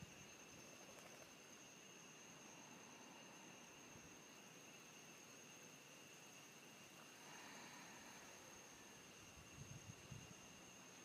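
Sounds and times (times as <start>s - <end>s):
outdoor background hiss: 0.0s - 11.0s.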